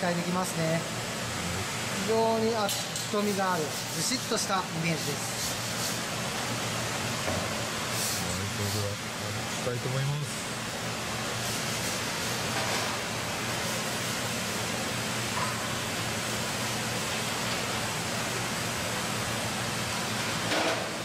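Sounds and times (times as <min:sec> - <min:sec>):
running water hissing: 0:07.6 - 0:09.0.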